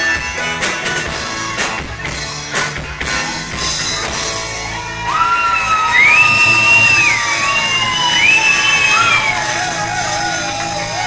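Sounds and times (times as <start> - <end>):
audience cheering: 4.1 - 11.0.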